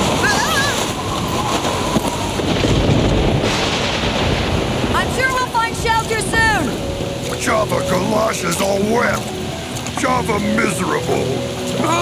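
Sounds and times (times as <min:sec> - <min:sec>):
gusting wind: 0:00.0 - 0:12.0
heavy rain: 0:00.0 - 0:12.0
person crying out: 0:00.2 - 0:00.9.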